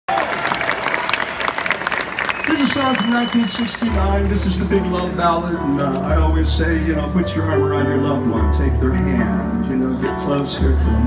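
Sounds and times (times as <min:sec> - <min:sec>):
audience applauding: 0:00.1 - 0:05.2.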